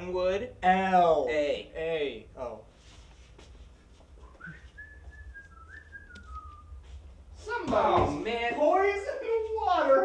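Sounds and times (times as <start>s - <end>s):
person whistling: 4.2s - 6.8s.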